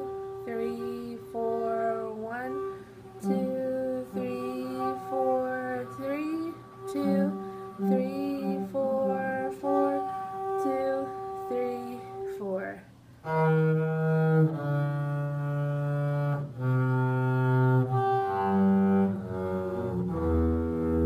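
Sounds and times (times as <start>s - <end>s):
bowed double bass low notes: 0.0s - 12.2s, 13.3s - 21.0s
woman singing: 0.0s - 12.9s.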